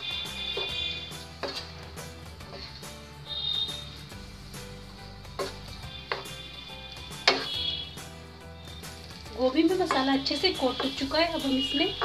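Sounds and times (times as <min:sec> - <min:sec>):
background music: 0:00.0 - 0:12.0
spatula knocking frying pan: 0:05.3 - 0:06.5, 0:07.1 - 0:07.8, 0:09.7 - 0:11.1.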